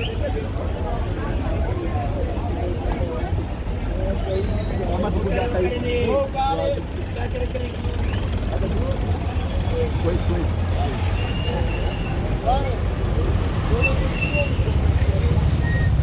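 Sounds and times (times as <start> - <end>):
passers-by voices: 0.0 - 16.0
traffic engine rumble: 0.0 - 16.0.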